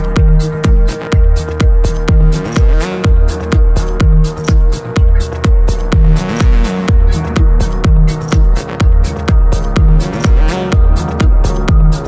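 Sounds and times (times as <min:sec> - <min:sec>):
electronic house music: 0:00.0 - 0:12.0.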